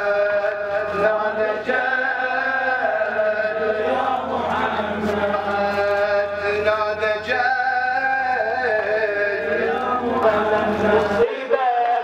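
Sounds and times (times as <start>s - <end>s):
man chanting a lament: 0.0s - 12.0s.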